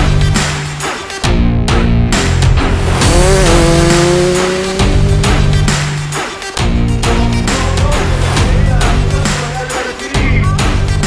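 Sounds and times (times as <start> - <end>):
background music: 0.0 - 11.0
rally car engine at high revs: 3.0 - 5.9.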